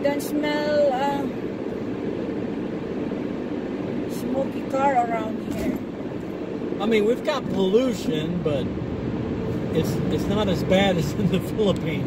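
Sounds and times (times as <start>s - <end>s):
car road and engine hum: 0.0s - 12.0s.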